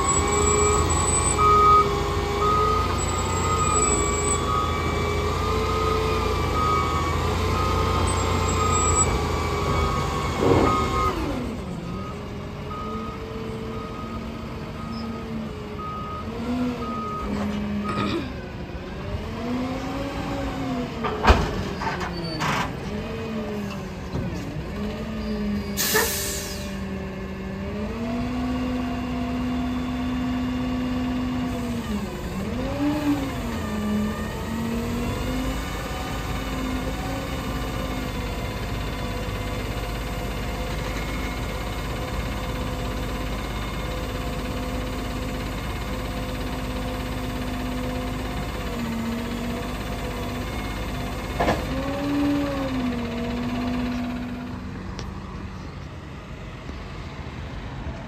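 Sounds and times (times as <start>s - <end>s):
garbage truck engine running: 0.0s - 57.1s.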